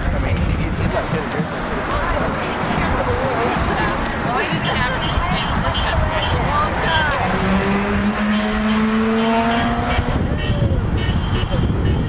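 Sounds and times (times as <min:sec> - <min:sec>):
murmur of voices: 0:00.0 - 0:12.0
vehicle engine accelerating: 0:00.6 - 0:11.0.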